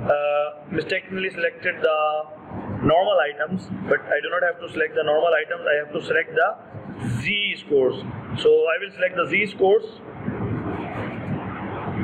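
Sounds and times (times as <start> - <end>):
steady rushing background noise: 0.0 - 12.0.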